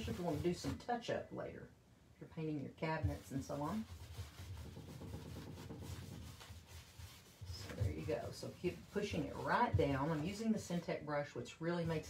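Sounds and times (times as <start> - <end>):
paintbrush scratchy rubbing: 0.0 - 0.8, 3.0 - 11.1, 11.7 - 12.0.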